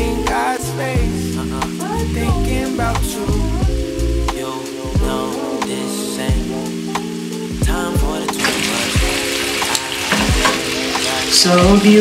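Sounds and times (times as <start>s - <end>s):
background music with steady beat: 0.0s - 12.0s
chicken sizzling in oil: 4.0s - 12.0s.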